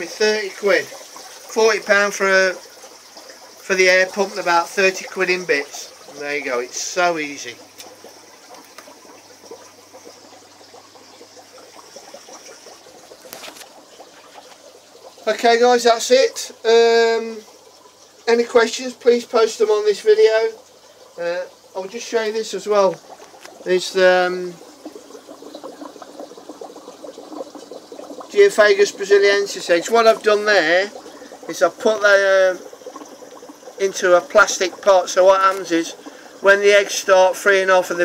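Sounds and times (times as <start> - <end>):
aquarium water bubbling: 0.0 - 38.0
faint steady hum: 0.0 - 38.0.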